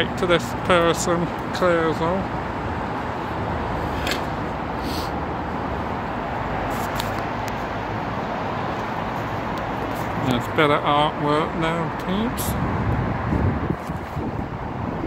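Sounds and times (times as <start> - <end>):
road traffic rushing hum: 0.0 - 15.0.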